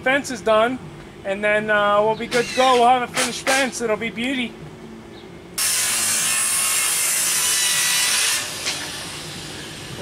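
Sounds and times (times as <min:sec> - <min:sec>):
power saw cutting wood: 0:05.6 - 0:10.0.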